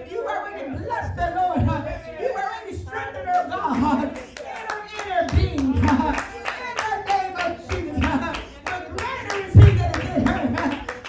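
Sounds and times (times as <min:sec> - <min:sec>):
hand clapping in rhythm: 0:03.3 - 0:11.0.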